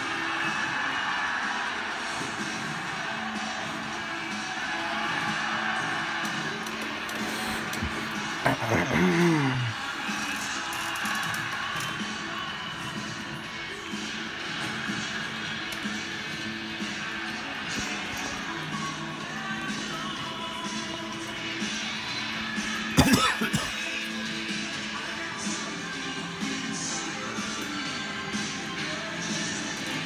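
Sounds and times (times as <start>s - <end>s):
music from television: 0.0s - 30.0s.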